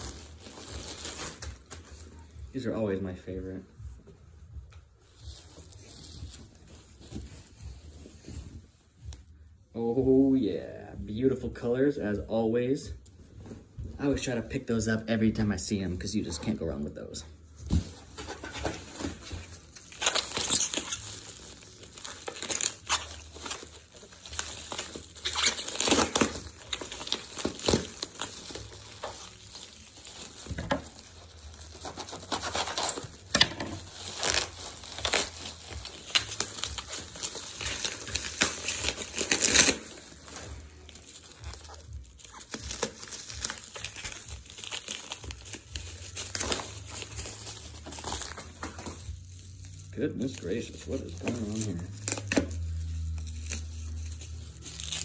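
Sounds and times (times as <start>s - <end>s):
bubble wrap crinkling and rustling: 0.0s - 55.0s.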